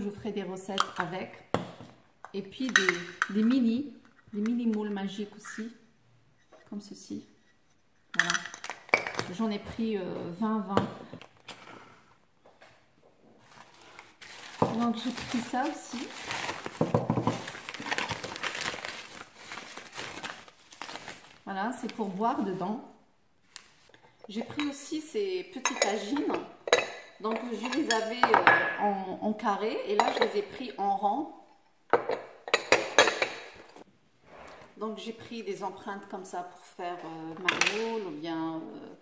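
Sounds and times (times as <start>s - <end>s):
paper wrapping crinkling: 13.4s - 22.6s
kitchenware knocking and clinking: 16.8s - 17.5s, 31.9s - 33.6s.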